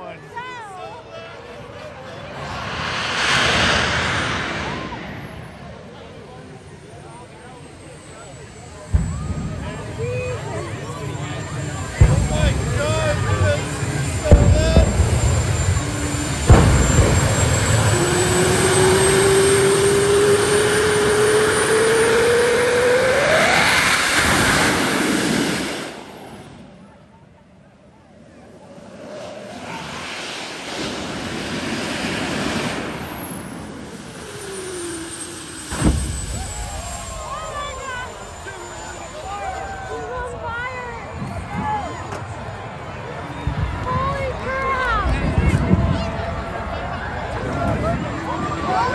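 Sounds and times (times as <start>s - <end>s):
crowd voices: 0.0s - 48.9s
jet engine turbine whine: 0.2s - 48.9s
loud flame bursts from exhaust: 2.3s - 6.3s, 11.4s - 26.7s, 28.8s - 40.0s
engine spooling up tone: 10.4s - 26.7s, 28.7s - 43.0s.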